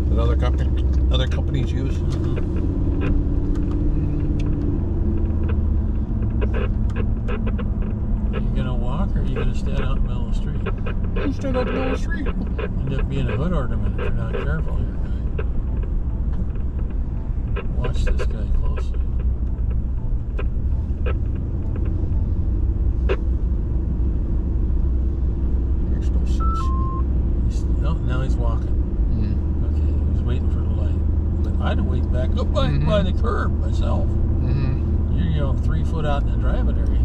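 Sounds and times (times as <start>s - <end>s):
vehicle engine and road noise: 0.0s - 37.0s
two-note beep: 26.4s - 27.0s.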